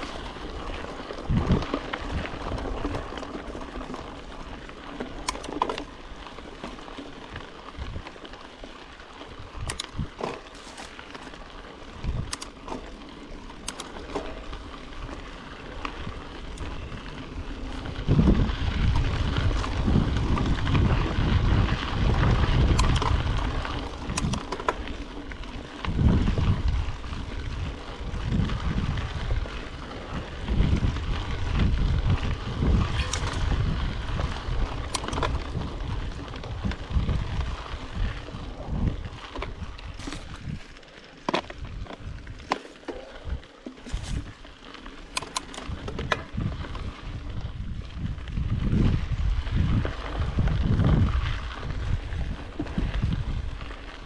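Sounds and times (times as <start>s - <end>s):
bike tyres on dirt and leaves: 0.0s - 54.0s
wind rumble on microphone: 0.0s - 54.0s
bike knocks and rattles: 9.6s - 16.7s, 17.6s - 44.5s, 45.1s - 46.7s.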